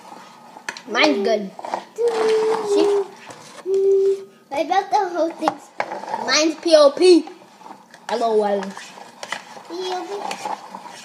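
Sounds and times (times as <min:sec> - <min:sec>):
child speaking: 0:00.9 - 0:07.4, 0:08.1 - 0:08.8, 0:09.7 - 0:10.4
child humming: 0:02.0 - 0:04.4.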